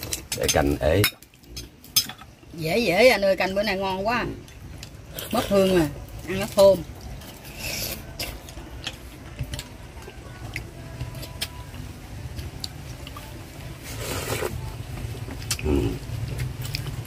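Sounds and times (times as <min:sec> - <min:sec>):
slurp of soup: 0:13.9 - 0:14.6.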